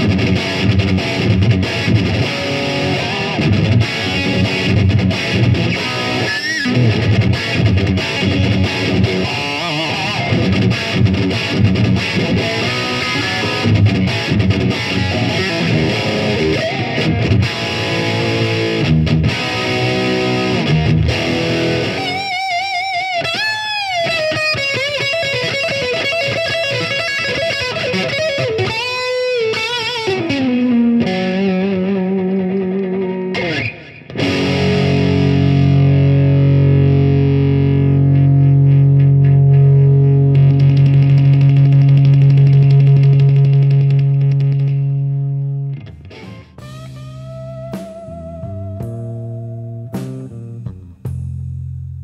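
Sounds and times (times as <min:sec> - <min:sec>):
distorted electric guitar: 0:00.0 - 0:52.0.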